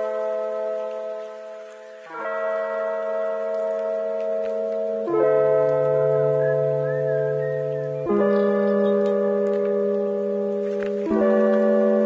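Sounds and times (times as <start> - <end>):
sustained held chords: 0.0 - 12.0.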